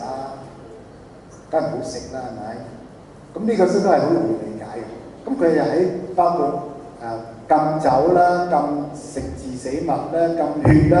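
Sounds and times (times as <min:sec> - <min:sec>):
man lecturing into microphone: 0:00.0 - 0:11.0.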